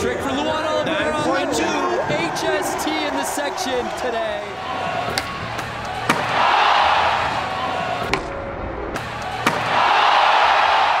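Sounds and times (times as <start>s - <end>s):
crowd cheering: 1.0s - 8.4s, 9.0s - 11.0s
skateboard landing slaps: 5.1s - 6.5s, 9.0s - 10.8s.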